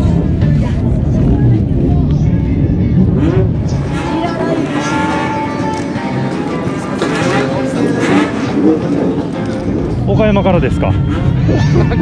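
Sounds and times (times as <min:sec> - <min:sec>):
motorcycle engines rumbling: 0:00.0 - 0:12.0.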